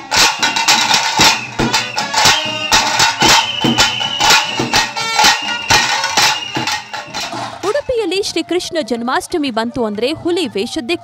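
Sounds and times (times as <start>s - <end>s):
fast loud drumming: 0.0s - 8.0s
high held tone: 0.0s - 8.2s.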